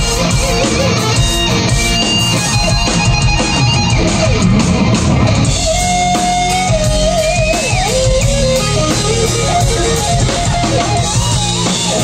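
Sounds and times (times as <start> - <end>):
hard rock band playing: 0.0 - 12.0.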